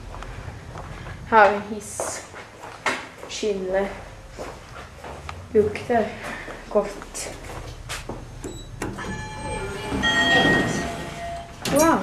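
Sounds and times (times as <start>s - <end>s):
elevator door motor whine: 8.2s - 12.0s.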